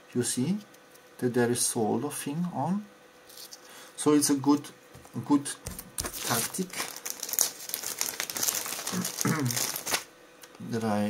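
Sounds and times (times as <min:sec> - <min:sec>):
plastic packaging crinkling: 0:05.7 - 0:10.1
person coughing: 0:08.9 - 0:09.6.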